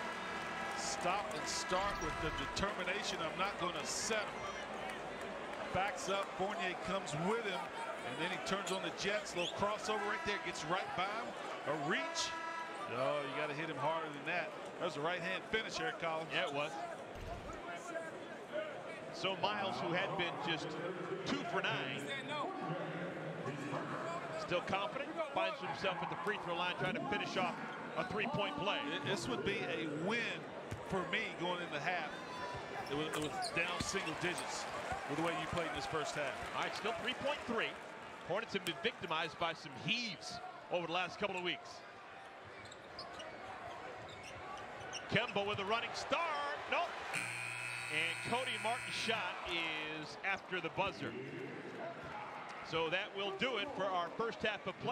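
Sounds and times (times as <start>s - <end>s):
arena crowd voices: 0.0s - 54.9s
sneakers squeaking on court: 32.8s - 34.2s, 42.5s - 45.4s.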